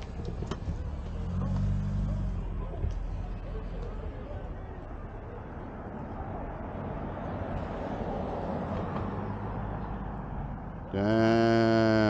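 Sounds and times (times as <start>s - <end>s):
faint street noise: 0.0s - 12.0s
vehicle engine humming: 0.0s - 12.0s.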